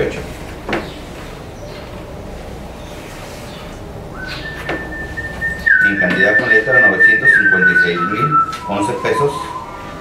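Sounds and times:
high whistling tone: 4.2 - 10.0.

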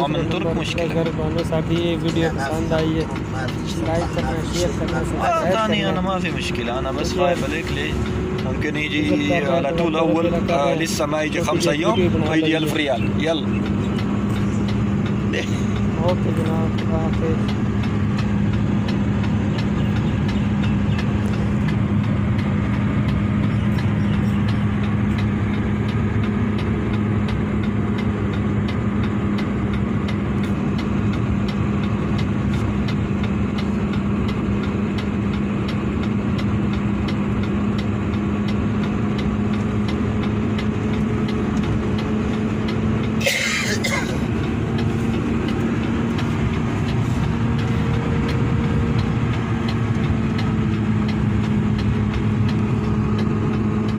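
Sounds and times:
constant low hum: 0.0 - 53.9
heavy vehicle engine and road drone: 0.0 - 53.9.

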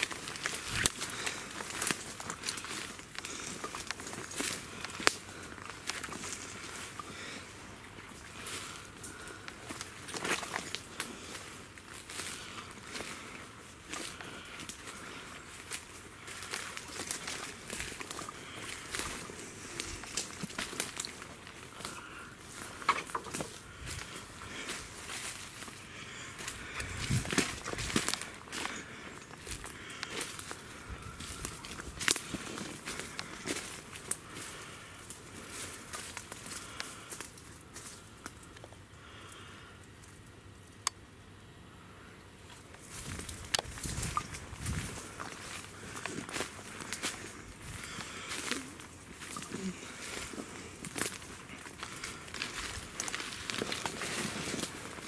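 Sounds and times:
footsteps crunching through dry leaves: 0.0 - 38.5, 42.5 - 55.0.

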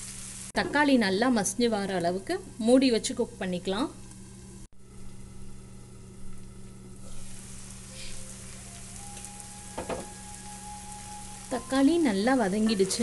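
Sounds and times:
vegetables sizzling in a skillet: 0.0 - 4.7, 6.2 - 13.0
brief knock: 9.8 - 10.1.

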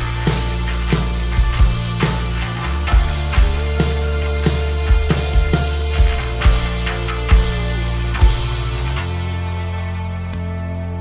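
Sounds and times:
worship band playing: 0.0 - 10.2.

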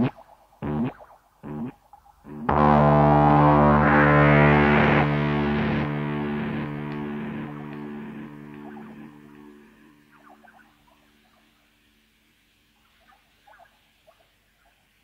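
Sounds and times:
distorted electric instrument noise: 0.0 - 10.7.

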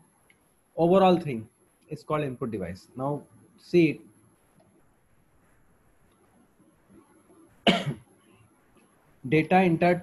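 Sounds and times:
man coughing: 7.7 - 8.0.

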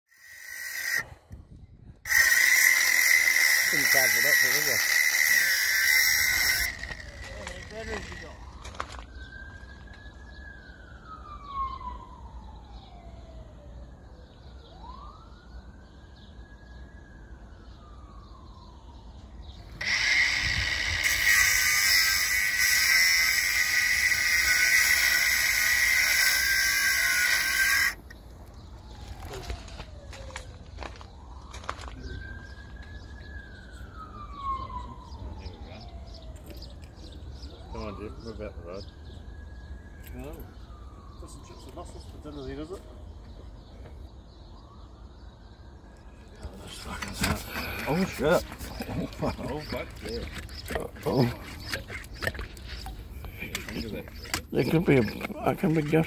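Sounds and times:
angle grinder cutting steel pipe: 0.1 - 1.1, 2.1 - 8.4, 19.8 - 28.0.

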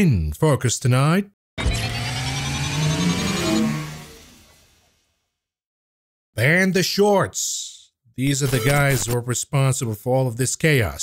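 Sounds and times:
low synth note stepping upward: 1.6 - 4.8
rising synthesized tones: 1.6 - 4.9.

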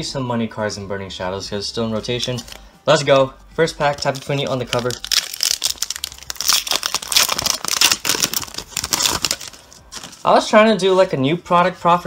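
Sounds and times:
foil wrapper tearing and crinkling: 4.0 - 10.4.

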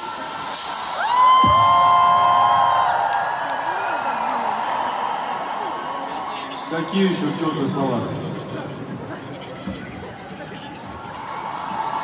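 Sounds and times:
bright rushing hiss: 0.0 - 1.4
crowd noise: 0.0 - 12.0.

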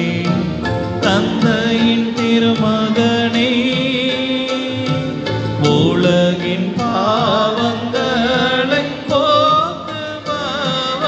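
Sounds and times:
hymn singing: 0.0 - 11.0
instrumental accompaniment: 0.0 - 11.0.

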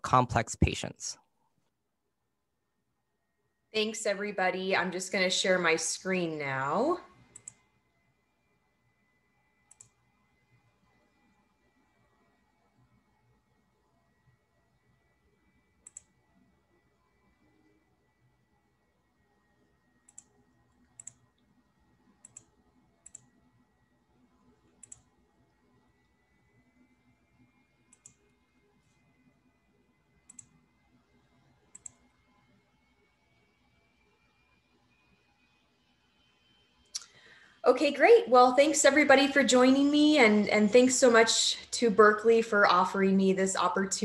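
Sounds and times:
computer mouse clicks: 7.3 - 7.7, 9.6 - 10.1, 15.8 - 16.2, 20.0 - 23.6, 24.6 - 25.2, 27.8 - 29.1, 30.2 - 30.9, 31.6 - 32.5.

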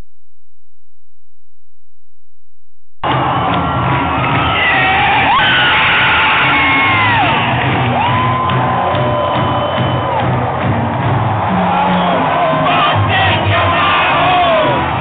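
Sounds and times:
crowd cheering: 3.0 - 15.0
music over stadium sound system: 3.0 - 15.0
screams and whoops: 3.0 - 15.0.

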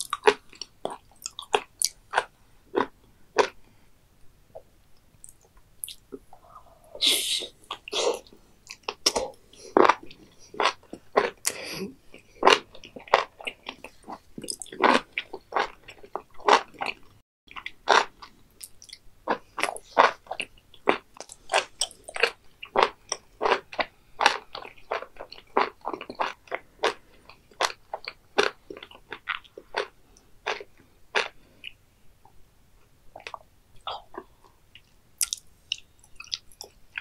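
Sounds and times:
wet crunchy chewing: 0.0 - 3.6, 7.6 - 31.8.

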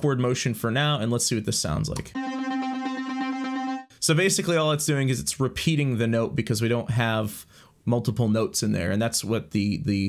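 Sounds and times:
synth lead repeating note: 2.2 - 3.9.

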